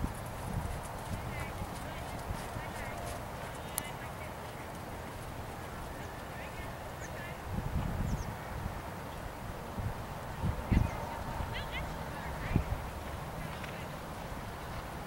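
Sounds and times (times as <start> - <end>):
horse hoofbeats on sand: 0.0 - 3.8.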